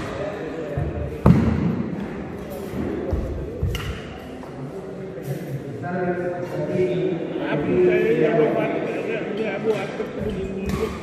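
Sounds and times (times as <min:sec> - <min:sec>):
voices in a hall: 0:00.0 - 0:11.0.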